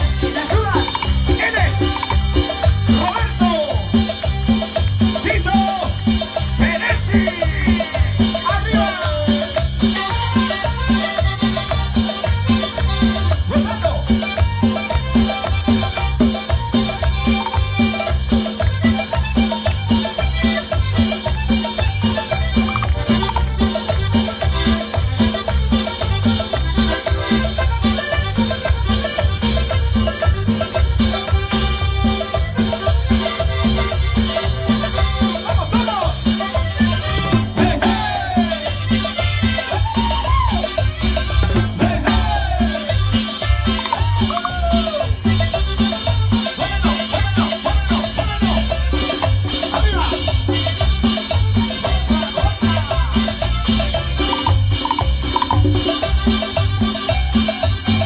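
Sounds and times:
accordion: 0.0 - 58.0
bass notes: 0.0 - 58.0
drum kit with cymbals: 0.0 - 58.0
live band dance music: 0.0 - 58.0.

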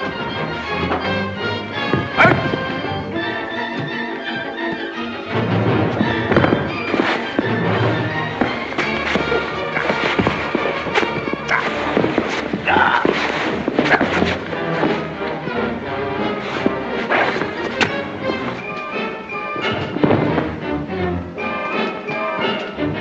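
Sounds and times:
bodies hitting the floor: 0.0 - 15.4, 16.1 - 18.9, 19.6 - 20.7
thuds of blows: 0.0 - 15.4, 19.6 - 20.8
film score music: 0.0 - 23.0.

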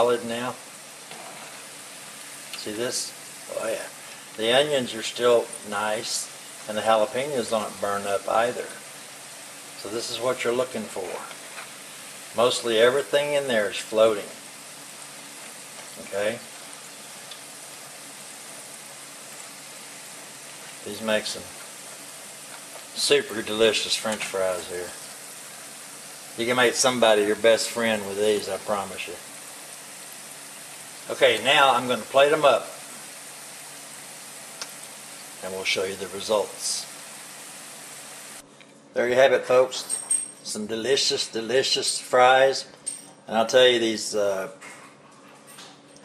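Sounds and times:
fries sizzling in oil: 0.0 - 38.4.

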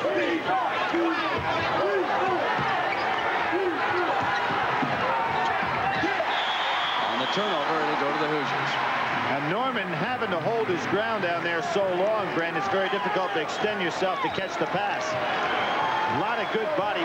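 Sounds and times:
arena crowd shouting and chatter: 0.0 - 17.0.

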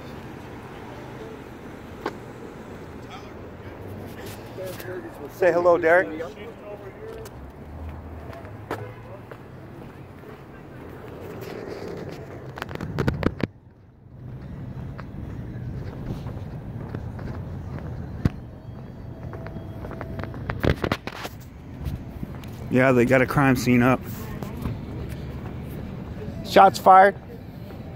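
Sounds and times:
low traffic rumble: 0.0 - 27.9
wind rumble: 10.3 - 22.8.

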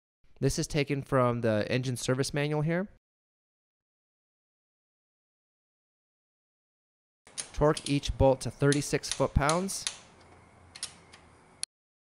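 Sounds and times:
torque wrench clicks: 8.7 - 10.1.

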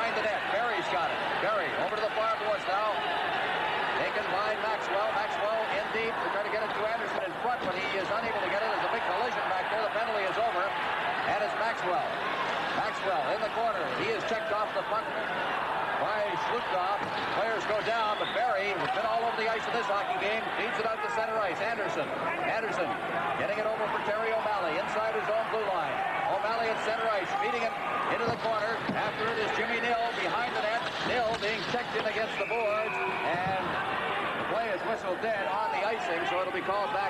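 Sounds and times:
man commentating: 0.0 - 3.0, 4.0 - 15.4, 16.0 - 37.0
arena crowd noise: 0.0 - 37.0
hockey sticks and puck knocking: 17.0 - 18.0, 18.7 - 19.0, 28.2 - 32.7.

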